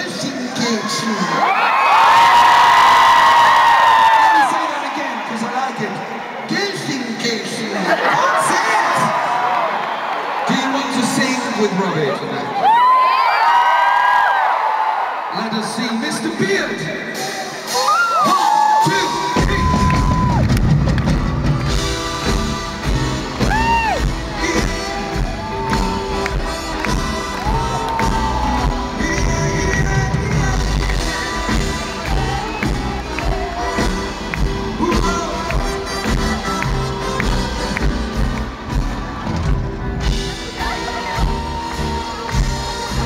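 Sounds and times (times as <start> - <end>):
crowd cheering and whooping: 0.5 - 5.6, 7.7 - 16.0, 17.2 - 43.0
live band playing swing: 19.4 - 43.0.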